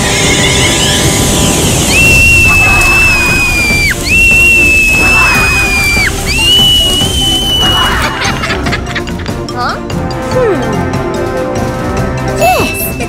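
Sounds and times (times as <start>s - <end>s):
cartoon steam whistle: 0.0s - 8.0s
music: 0.0s - 13.0s.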